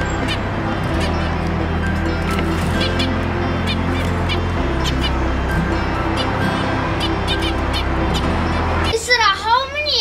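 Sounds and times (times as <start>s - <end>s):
finches calling: 0.0s - 9.6s
background music: 0.0s - 10.0s.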